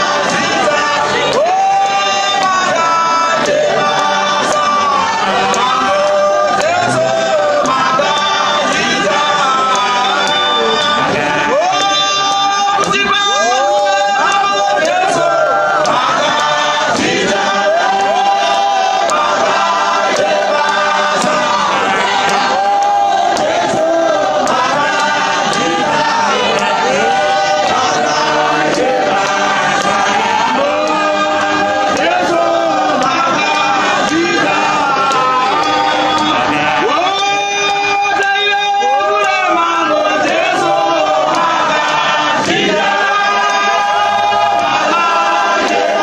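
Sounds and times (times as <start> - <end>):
congregation singing a hymn: 0.0 - 46.0
hand claps: 0.0 - 46.0.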